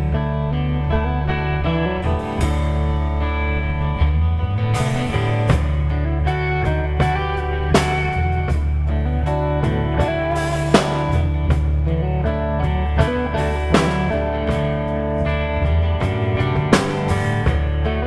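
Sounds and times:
bass notes: 0:00.0 - 0:18.0
drum kit: 0:00.0 - 0:18.0
electric guitar: 0:00.0 - 0:18.0.

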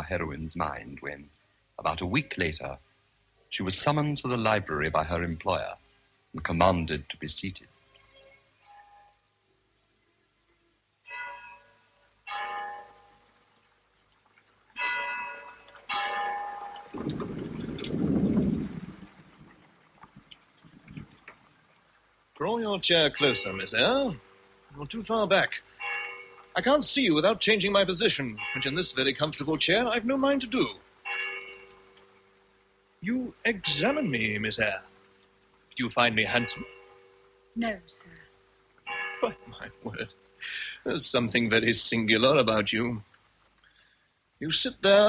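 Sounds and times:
bell-like chimes: 0:07.8 - 0:09.3, 0:11.1 - 0:13.4, 0:14.8 - 0:17.1, 0:23.1 - 0:24.8, 0:25.5 - 0:26.8, 0:27.6 - 0:29.4, 0:30.5 - 0:32.2, 0:33.6 - 0:34.9, 0:36.0 - 0:37.4, 0:38.9 - 0:41.6
low rumbling noise: 0:16.8 - 0:25.7.

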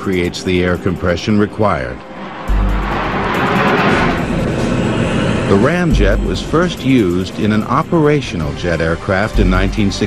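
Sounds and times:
jet engine roar: 0:01.4 - 0:09.3.

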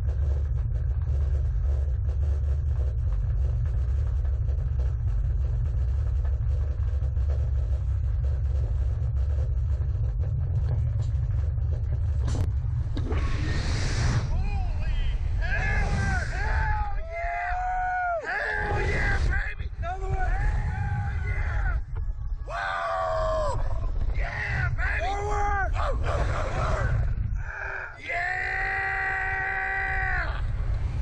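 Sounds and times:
wind buffeting microphone: 0:00.0 - 0:17.8, 0:18.4 - 0:27.9
loud rush: 0:12.8 - 0:21.7
riders yelling and whooping: 0:14.3 - 0:30.6.

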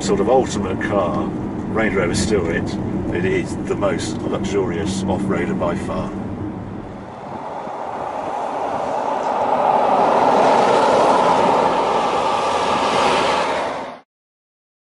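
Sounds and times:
car driving past: 0:04.1 - 0:14.0.

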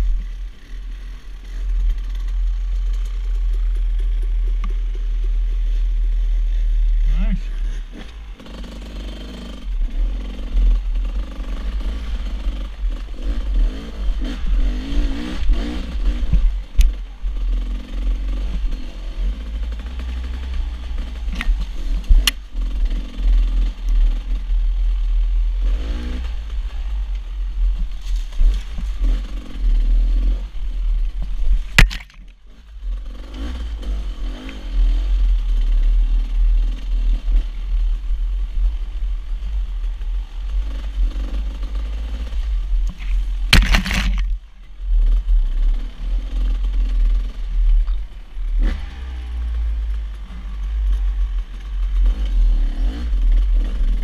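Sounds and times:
dirt bike engine revving: 0:07.7 - 0:16.6, 0:43.2 - 0:44.4
heavy low rumble: 0:37.9 - 0:45.5
sharp knocks: 0:43.5 - 0:44.4.

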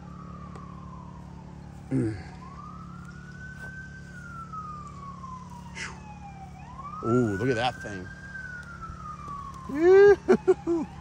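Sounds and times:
siren wailing: 0:00.0 - 0:11.0
steady low hum: 0:00.0 - 0:11.0.

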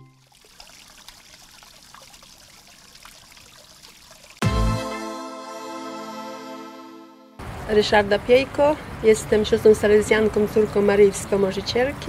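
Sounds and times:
garden spring trickling: 0:00.0 - 0:04.4
music hit with deep boom: 0:04.4 - 0:05.0
sustained musical tones: 0:04.4 - 0:07.4.

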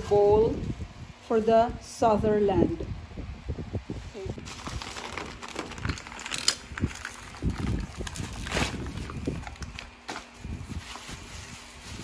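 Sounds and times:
newspaper crinkling and rustling: 0:04.3 - 0:12.0.

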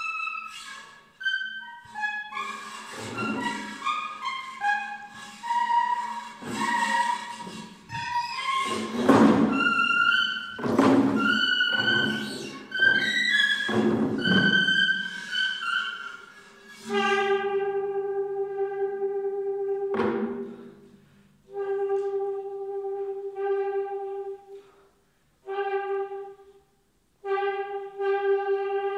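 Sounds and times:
short pitched saxophone notes: 0:14.2 - 0:24.8, 0:25.4 - 0:28.9.

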